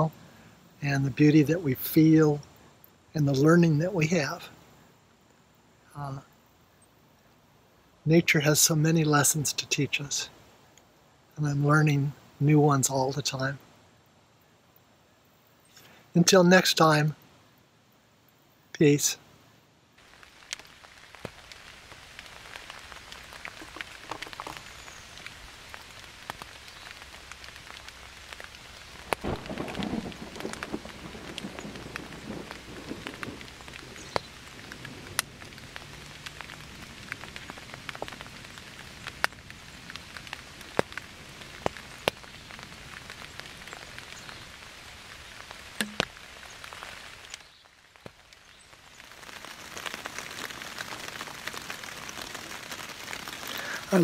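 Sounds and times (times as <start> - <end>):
steady rain: 0.0 - 54.0.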